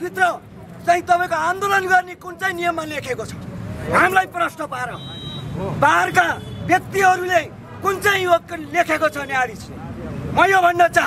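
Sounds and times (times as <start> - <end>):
man speaking loudly: 0.0 - 11.0
street traffic rumble: 0.0 - 11.0.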